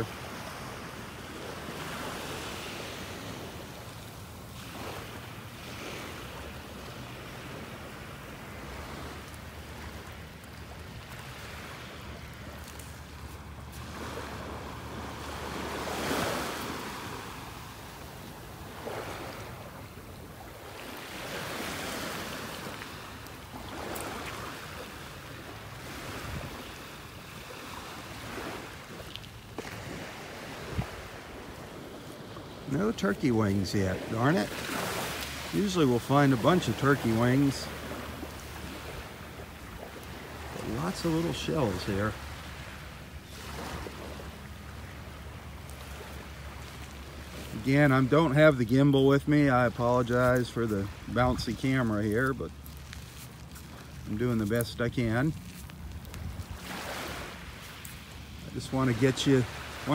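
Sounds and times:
small waves washing on shore: 0.0 - 59.9
wind on microphone: 26.1 - 26.6, 29.8 - 32.7.

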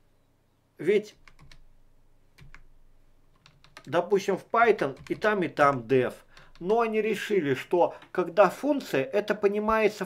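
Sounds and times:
faint keyboard keystrokes: 1.2 - 1.7, 2.3 - 4.0, 4.7 - 7.0, 7.9 - 8.2.

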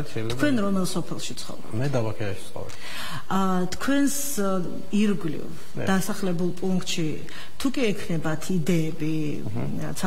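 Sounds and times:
person speaking: 0.0 - 1.0, 5.7 - 6.5, 9.2 - 10.0.

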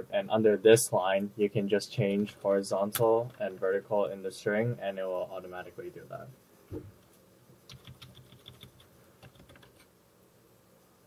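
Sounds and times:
typing on computer keyboard: 7.7 - 9.8.

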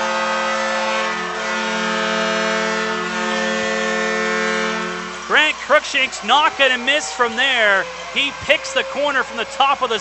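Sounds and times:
goal horn blast: 0.0 - 10.0.

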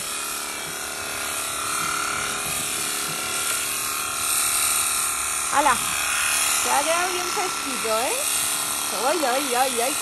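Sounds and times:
electric shears buzzing: 0.0 - 10.0.

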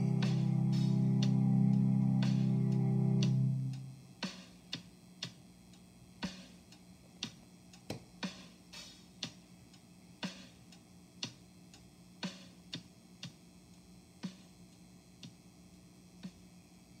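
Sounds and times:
clock ticking: 0.0 - 4.0, 4.6 - 15.4
low steady hum: 0.0 - 17.0.

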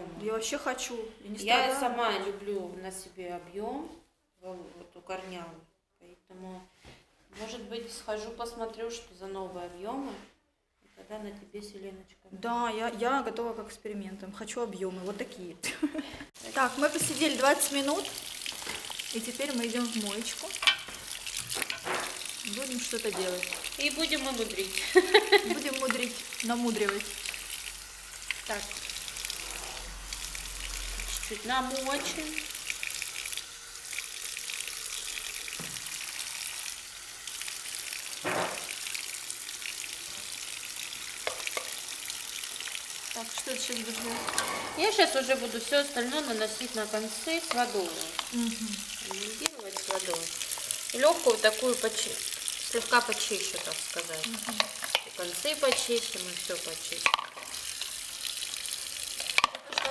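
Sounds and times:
water sprayer hissing onto hair: 16.4 - 59.1.

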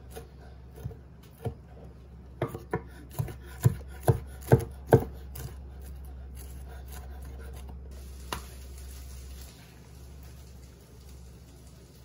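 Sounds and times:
knife chopping on wooden board: 0.0 - 1.6, 2.4 - 5.6.

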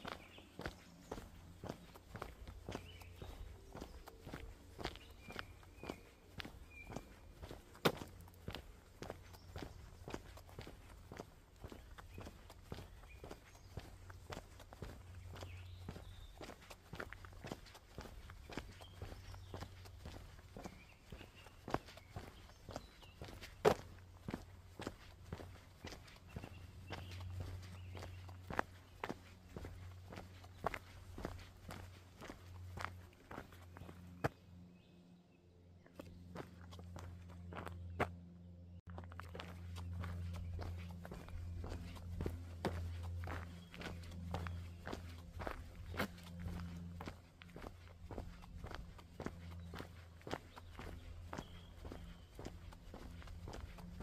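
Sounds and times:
footsteps crunching on path: 0.0 - 34.9, 35.8 - 54.0
low steady rumble: 23.9 - 54.0.

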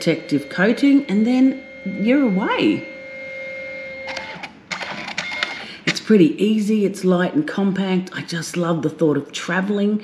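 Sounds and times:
printer motor running: 0.0 - 5.7
printer clicks: 3.9 - 5.6.

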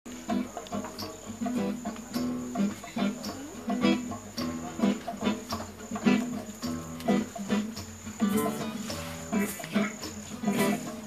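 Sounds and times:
acoustic guitar picking notes: 0.1 - 11.0
cricket trill: 0.1 - 11.0.

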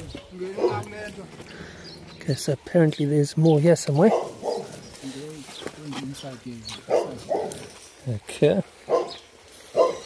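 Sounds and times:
man talking quietly: 0.0 - 1.4.

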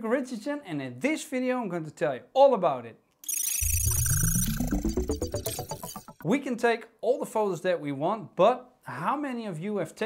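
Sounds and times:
rapid high digital beeps: 3.3 - 6.2
deep bass rising in pitch: 3.6 - 6.2.

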